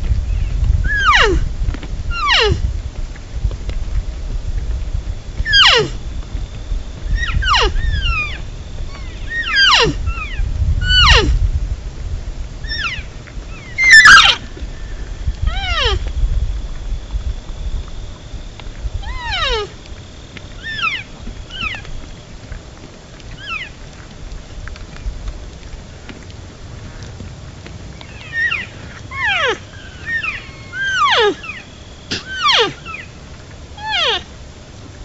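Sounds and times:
low rumble: 0.0 - 35.0
elk mews: 0.9 - 1.5, 2.1 - 2.7, 5.5 - 6.0, 7.1 - 11.4, 12.7 - 14.5, 15.4 - 16.1, 19.0 - 19.8, 28.0 - 33.1, 33.8 - 34.3.

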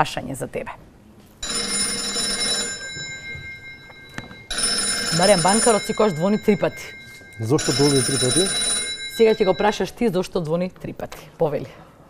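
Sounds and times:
telephone bell ringing: 1.4 - 10.2.

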